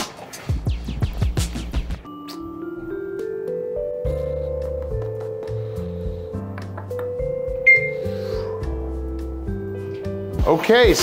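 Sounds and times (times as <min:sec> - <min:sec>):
background music with bass line: 0:00.4 - 0:02.1
elevator arrival chime: 0:07.4 - 0:08.2.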